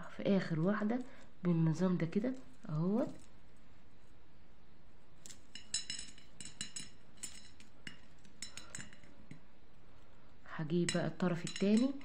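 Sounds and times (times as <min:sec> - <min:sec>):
beads clinking on ceramic plate: 0:00.5 - 0:03.6, 0:05.2 - 0:09.5, 0:10.6 - 0:12.0.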